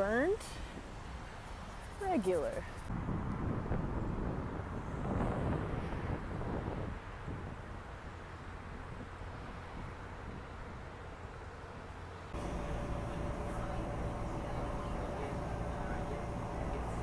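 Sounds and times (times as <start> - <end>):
road traffic rumble: 0.0 - 17.0
wind on microphone: 2.8 - 10.8.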